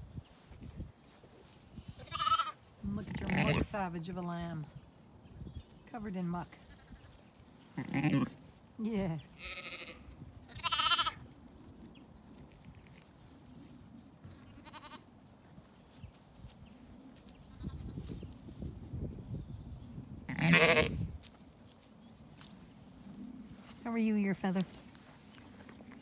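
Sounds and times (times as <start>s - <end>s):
sheep bleating: 2.0s - 3.6s, 7.8s - 8.4s, 9.4s - 11.2s, 14.4s - 15.0s, 20.3s - 21.0s.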